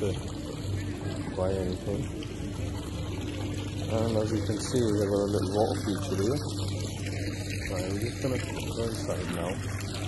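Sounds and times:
low steady hum: 0.0s - 10.0s
water trickling in fountain: 0.0s - 10.0s.

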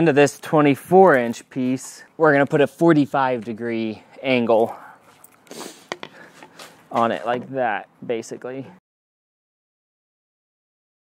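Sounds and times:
handling noises: 4.6s - 7.6s.

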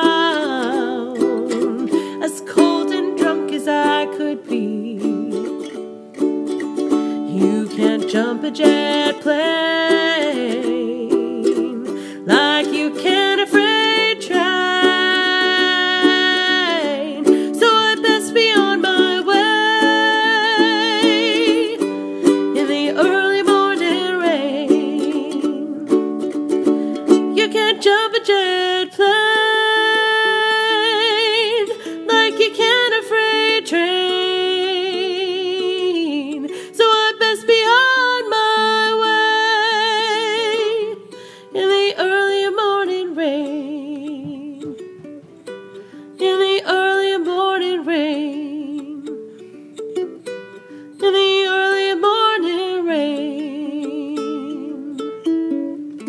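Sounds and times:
woman singing with vibrato: 0.0s - 5.9s, 6.7s - 45.1s, 46.1s - 49.3s, 50.9s - 56.0s
strummed ukulele: 0.0s - 56.0s.

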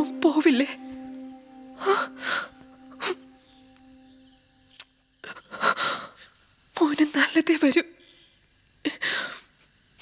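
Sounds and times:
woman speaking: 0.0s - 0.8s
crickets chirping: 0.0s - 10.0s.

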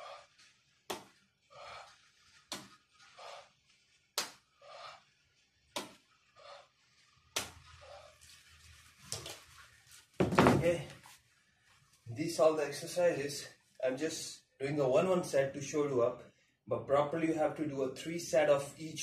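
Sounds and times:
man breathing hard: 0.0s - 0.6s, 1.4s - 2.4s.

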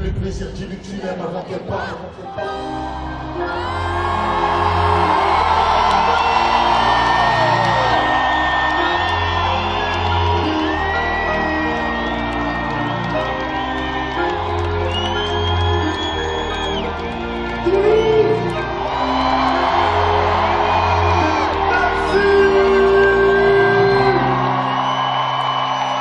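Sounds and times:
live rap music over sound system: 0.0s - 2.5s
crowd whooping and shouting: 2.6s - 26.0s.

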